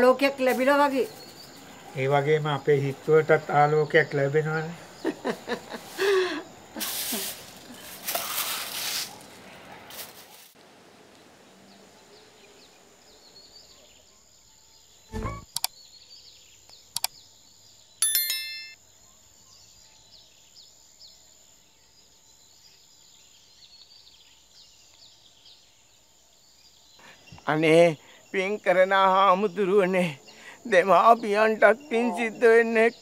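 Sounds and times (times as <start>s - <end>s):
small birds chirping: 0.0s - 10.6s, 11.2s - 33.0s
bright chiming ding: 18.0s - 18.8s.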